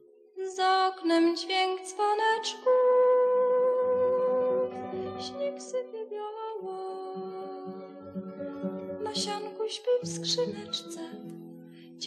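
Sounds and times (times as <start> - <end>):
guitar accompaniment: 2.7 - 12.0.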